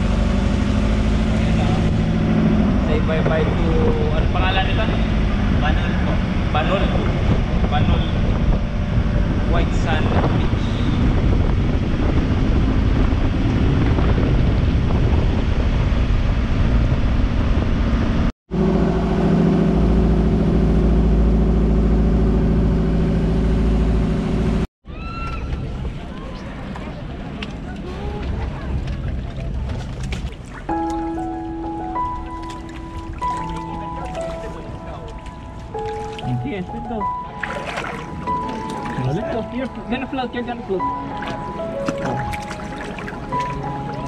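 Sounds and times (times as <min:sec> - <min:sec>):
boat engine running: 0:00.0 - 0:24.7, 0:25.6 - 0:44.0
wind buffeting microphone: 0:01.6 - 0:18.3.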